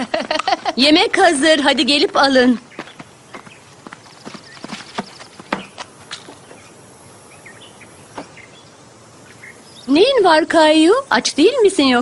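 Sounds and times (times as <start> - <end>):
faint outdoor ambience: 0.0 - 12.0.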